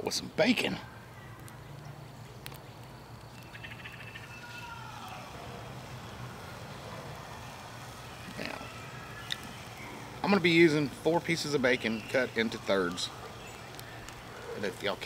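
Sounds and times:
bacon sizzling: 2.4s - 15.0s.

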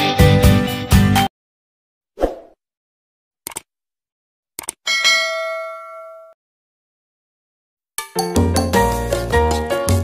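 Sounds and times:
quick clicks: 3.4s - 3.7s, 4.6s - 4.8s
bell ding: 4.9s - 6.4s.

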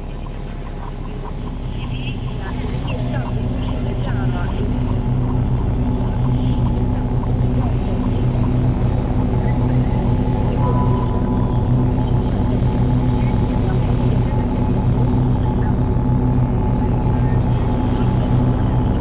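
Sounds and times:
low synthesizer drone: 0.0s - 19.0s
warbling chirping synth glides: 0.0s - 19.0s.

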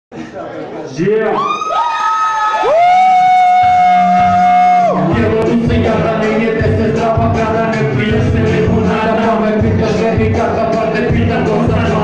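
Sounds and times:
crowd cheering: 1.3s - 5.3s.

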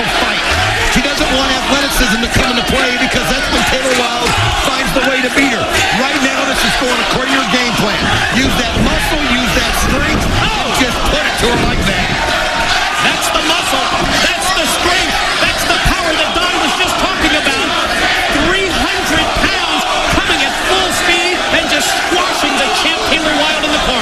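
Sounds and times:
crowd shouting: 0.0s - 24.0s.

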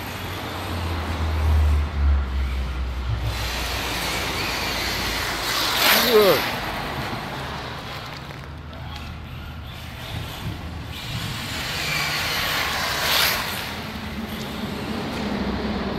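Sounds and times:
radio-controlled car running: 0.0s - 15.7s.

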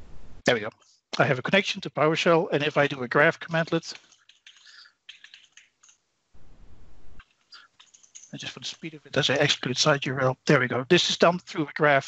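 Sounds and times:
brief low rumble: 6.4s - 7.2s.

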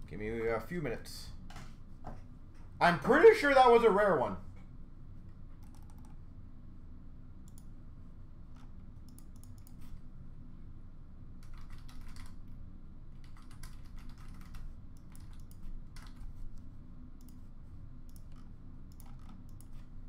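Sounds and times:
low room hum: 0.0s - 20.0s
typing on computer keyboard: 5.6s - 6.2s, 11.4s - 12.4s, 13.2s - 16.3s, 18.1s - 19.8s.

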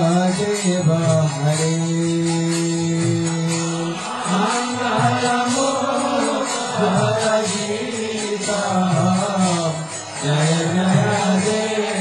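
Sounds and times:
instrumental accompaniment: 0.0s - 12.0s
light percussive jingle: 0.0s - 12.0s
group chanting a mantra: 3.7s - 12.0s.

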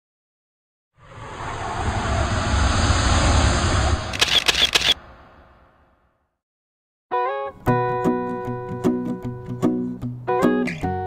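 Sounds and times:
rush of noise with rumble: 1.0s - 6.1s
camera shutter clicks: 4.1s - 5.0s.

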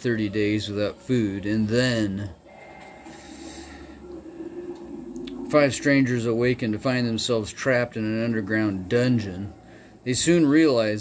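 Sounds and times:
man breathing out through nose: 3.1s - 5.0s.

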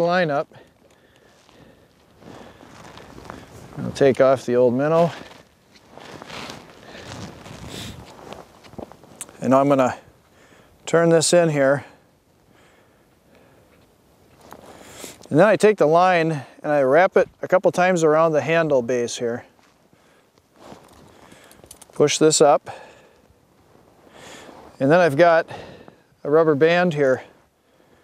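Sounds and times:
faint handling of fishing gear: 0.6s - 9.6s, 19.5s - 22.2s.

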